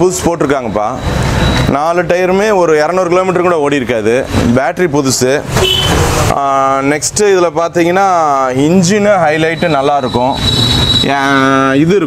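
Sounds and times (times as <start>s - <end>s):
man talking: 0.0s - 1.0s, 1.7s - 5.5s, 6.3s - 10.4s, 11.0s - 12.0s.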